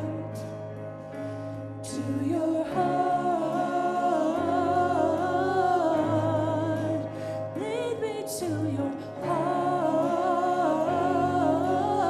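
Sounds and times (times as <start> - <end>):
sustained accompaniment chords: 0.0 - 12.0
person singing with vibrato: 1.8 - 12.0.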